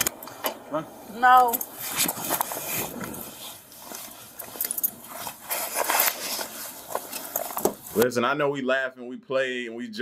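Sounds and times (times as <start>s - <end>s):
clothing rustling on microphone: 1.7s - 8.0s.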